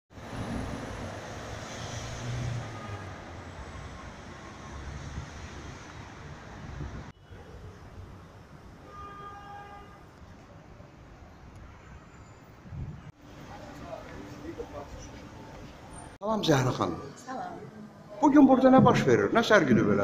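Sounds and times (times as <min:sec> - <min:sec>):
rumble of passing vehicles: 0:00.1 - 0:09.0, 0:09.8 - 0:16.2.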